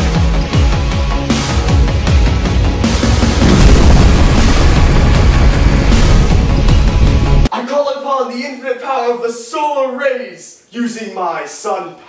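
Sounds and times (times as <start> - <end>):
dramatic action music: 0.1 - 7.5
rumbling explosion: 2.4 - 7.5.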